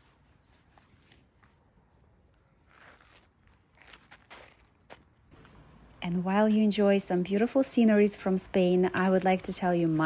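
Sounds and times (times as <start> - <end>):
faint footsteps: 0.0 - 6.2.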